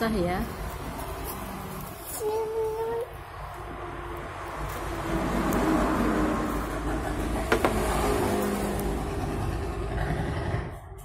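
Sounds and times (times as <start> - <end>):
vehicle engine running: 4.6 - 11.0.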